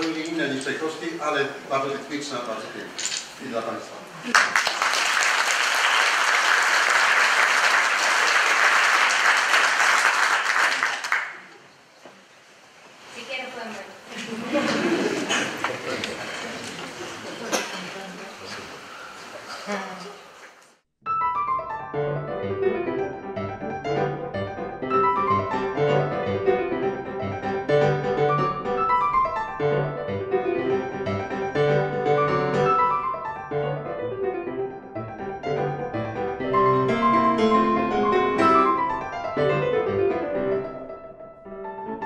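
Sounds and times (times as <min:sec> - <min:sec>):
solo piano piece: 0:21.0 - 0:42.0.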